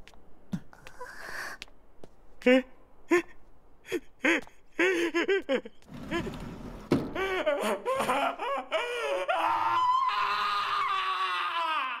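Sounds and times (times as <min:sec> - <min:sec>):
man sobbing and wailing: 0:02.4 - 0:06.3, 0:07.1 - 0:12.0.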